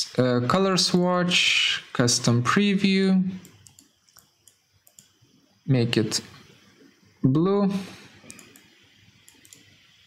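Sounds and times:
computer mouse clicks: 3.4 - 5.2, 8.2 - 9.9.

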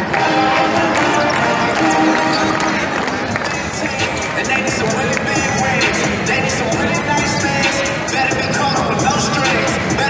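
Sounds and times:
music playing: 0.0 - 10.0
voices in arena: 0.0 - 10.0.

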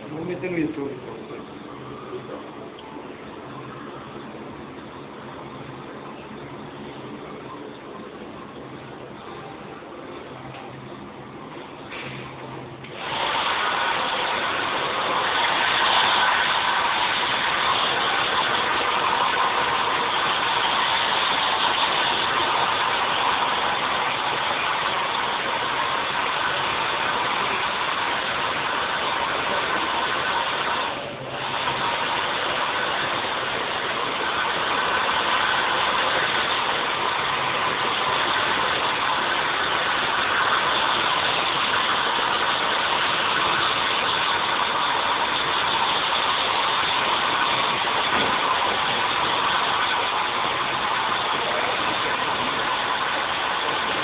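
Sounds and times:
hair dryer running: 12.9 - 54.0.

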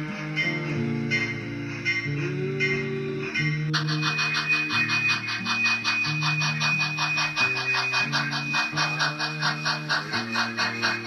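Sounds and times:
background music low notes: 0.0 - 11.0
model steam locomotive chuffing: 0.0 - 11.0
steady high whine: 0.0 - 11.0.

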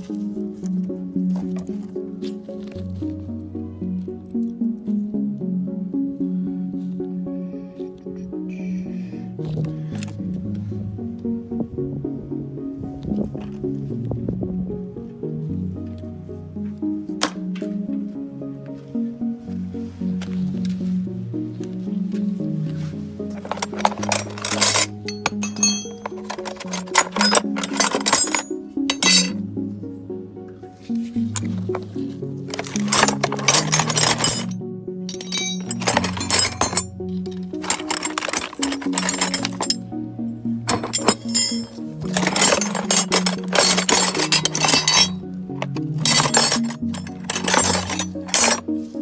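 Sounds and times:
background music with bass line: 0.0 - 49.0
metal hand tools clinking: 23.4 - 29.4, 32.5 - 39.8, 40.7 - 48.8.

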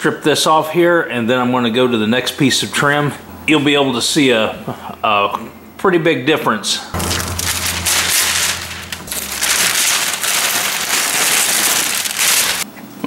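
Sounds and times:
masking paper and tape peeling: 7.0 - 12.7.

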